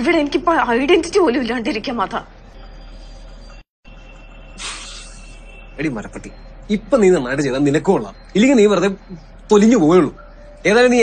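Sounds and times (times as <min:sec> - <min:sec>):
short breathy hiss: 0:04.6 - 0:05.4.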